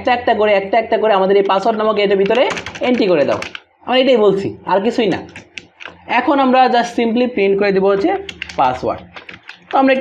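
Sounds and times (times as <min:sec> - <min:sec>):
keyboard keystroke clicks: 0:08.2 - 0:09.8.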